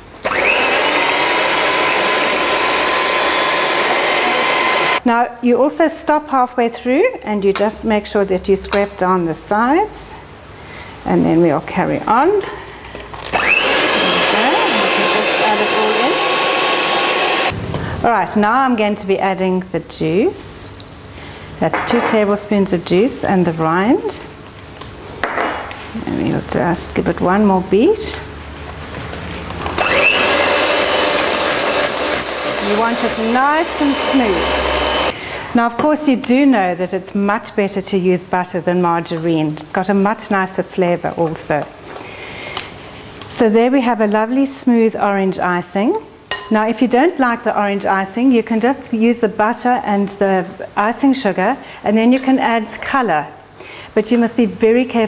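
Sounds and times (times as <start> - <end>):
electric hand mixer whining: 0.2 - 5.0, 13.3 - 17.6, 29.6 - 35.3.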